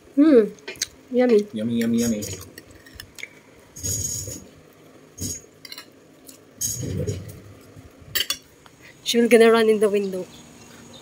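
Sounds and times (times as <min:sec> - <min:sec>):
fork clinking and scraping on plate: 0:05.2 - 0:07.2.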